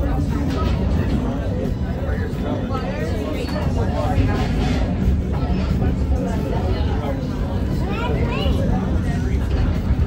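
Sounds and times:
indistinct passenger voices: 0:00.0 - 0:10.0.

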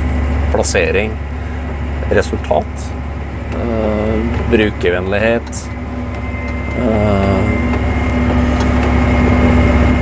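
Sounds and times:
tractor engine droning under load: 0:00.0 - 0:10.0.

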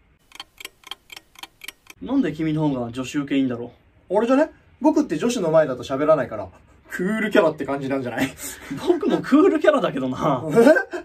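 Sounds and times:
clock ticking: 0:00.0 - 0:02.0.

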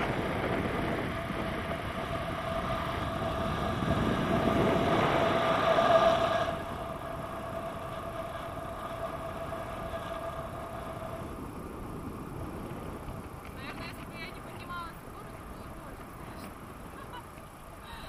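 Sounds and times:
wind rushing over microphone: 0:00.0 - 0:18.0
steady whistle: 0:01.7 - 0:11.4.

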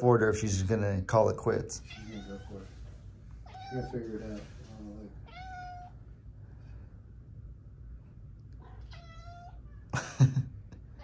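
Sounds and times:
cat meowing: 0:01.8 - 0:02.8, 0:03.4 - 0:04.4, 0:05.2 - 0:06.0, 0:08.6 - 0:09.9.

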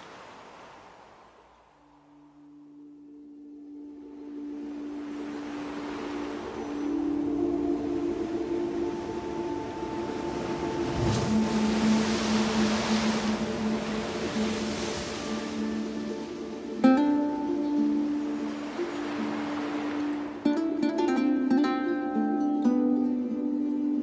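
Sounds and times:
waves breaking on shore: 0:00.0 - 0:02.0, 0:04.1 - 0:22.4
ambient drone tones: 0:02.1 - 0:20.4.

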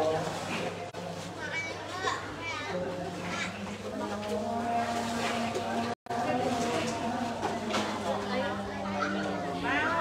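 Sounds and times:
people talking: 0:01.3 - 0:10.0
children's voices: 0:01.4 - 0:03.7, 0:08.1 - 0:10.0.

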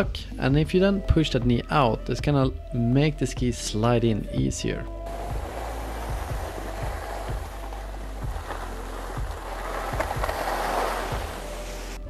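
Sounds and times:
skis scraping over snow: 0:05.1 - 0:12.0.

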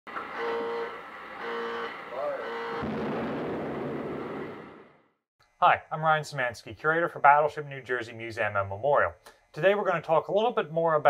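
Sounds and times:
deep rumbling boom: 0:02.8 - 0:05.0.

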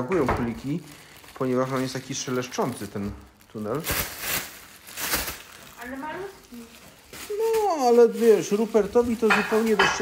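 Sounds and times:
crinkly fabric tunnel rustling: 0:00.5 - 0:09.7.

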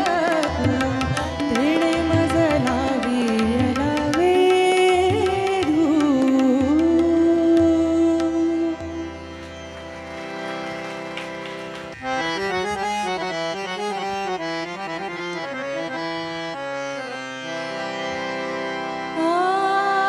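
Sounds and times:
harmonium playing melody: 0:00.0 - 0:20.0.

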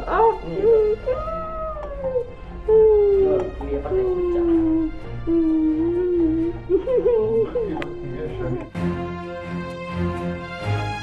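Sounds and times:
voice howling long notes: 0:00.0 - 0:08.6
quiet background music: 0:00.0 - 0:11.0.

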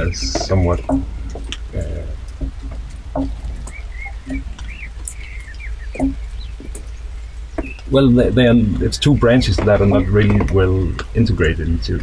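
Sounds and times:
small birds chirping: 0:00.0 - 0:12.0
wind rumble on microphone: 0:00.0 - 0:12.0.

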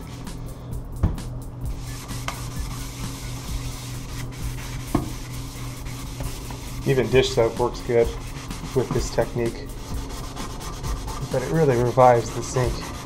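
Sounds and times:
scrubber pad rasping on steel: 0:01.8 - 0:13.0.

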